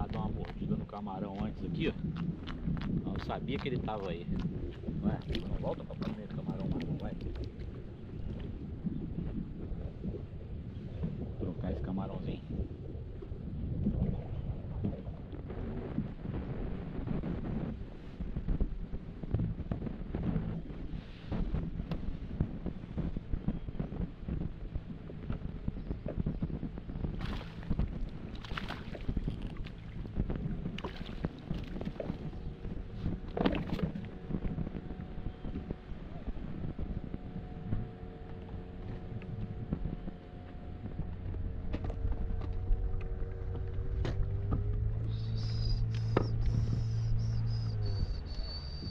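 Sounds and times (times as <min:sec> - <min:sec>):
water lapping against hull: 0:00.0 - 0:48.9
wind buffeting microphone: 0:00.0 - 0:48.9
splashes: 0:02.4 - 0:08.6, 0:27.1 - 0:32.4, 0:33.3 - 0:34.2.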